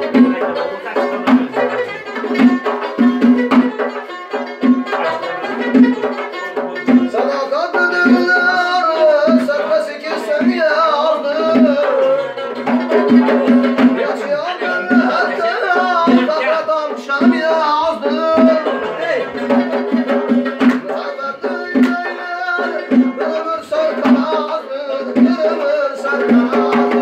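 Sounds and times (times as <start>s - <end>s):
frame drum beating: 0.0s - 16.4s, 17.0s - 27.0s
strummed long-necked lute: 0.0s - 27.0s
man singing: 4.8s - 27.0s.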